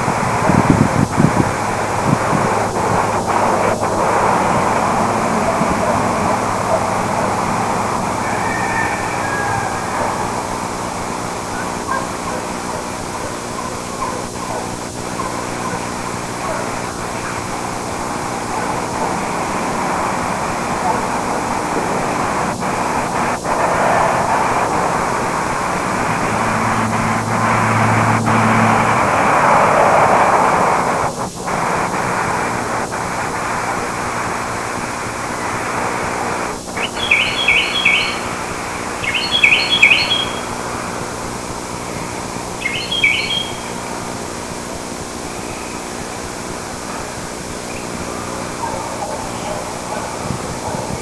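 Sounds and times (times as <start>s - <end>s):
low hum: 0.0s - 31.5s
steady outdoor hiss: 0.0s - 51.0s
small bird chirping: 36.7s - 38.4s, 39.0s - 40.6s, 42.6s - 43.8s.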